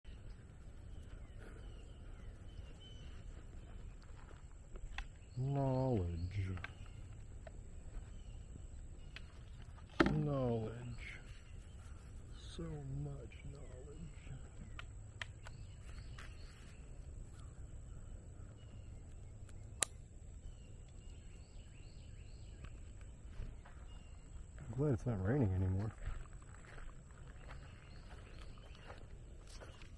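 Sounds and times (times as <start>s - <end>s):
faint bird chirps: 0.1s - 29.9s
man's drawn-out wordless voice: 5.4s - 6.8s, 10.0s - 11.3s.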